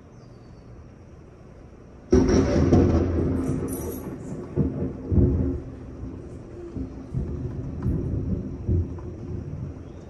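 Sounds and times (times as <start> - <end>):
thunder rumbling: 2.1 - 10.0.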